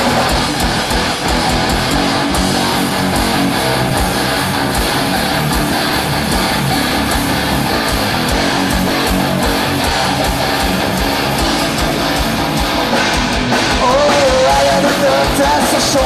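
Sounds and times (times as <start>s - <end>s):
bass guitar: 0.0s - 16.0s
drums with kick-drum pulse: 0.0s - 16.0s
electric guitar: 0.0s - 16.0s.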